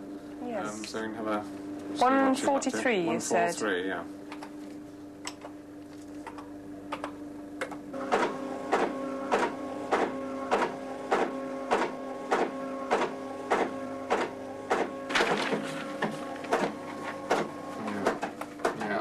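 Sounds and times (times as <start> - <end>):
printer motor hum: 0.0 - 19.0
printer striking: 8.0 - 18.9.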